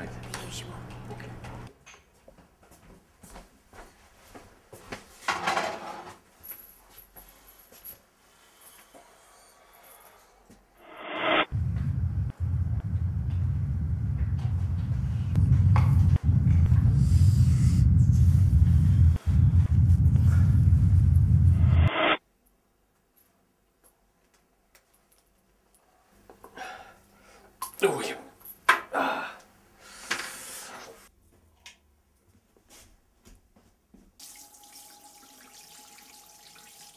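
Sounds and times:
deep low music drone: 11.5 - 22.1.

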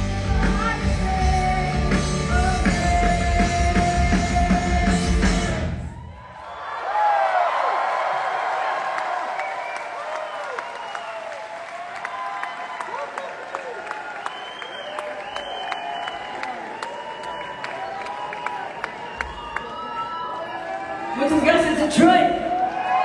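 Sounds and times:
live rock band playing: 0.0 - 5.9
crowd cheering and whooping: 5.7 - 21.5, 22.2 - 23.0.

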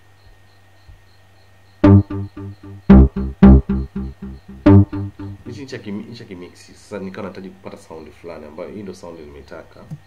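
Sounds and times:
heavy kick drum hits: 1.8 - 5.4
programmed electronic beat: 1.8 - 5.6.

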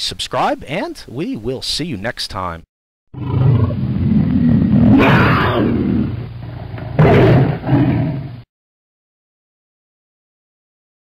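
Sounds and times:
big cat roaring: 3.2 - 8.4.

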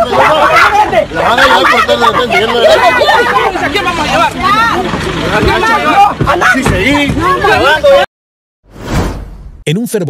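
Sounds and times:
people shouting and talking: 0.0 - 8.1.

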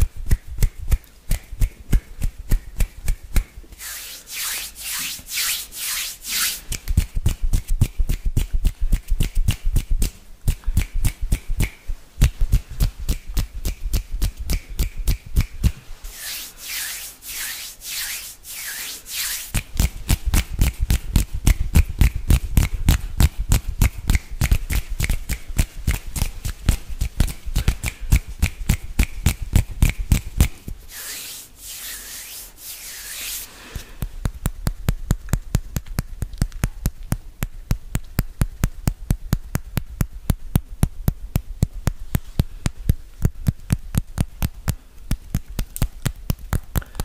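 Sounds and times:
hands rubbing and fluttering: 0.2 - 37.0
palms rubbing together hissing: 3.8 - 7.0, 15.9 - 19.9, 30.1 - 34.2.

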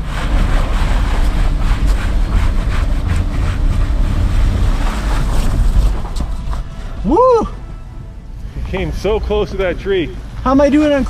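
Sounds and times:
truck engine under throttle: 0.0 - 10.3
wind rumble on microphone: 0.0 - 10.5
rock crunching: 3.0 - 7.8.

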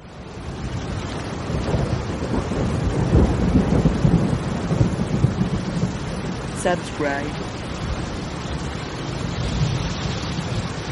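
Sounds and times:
heavy rain pouring: 0.0 - 10.9
thunder rumbling: 0.0 - 10.9.

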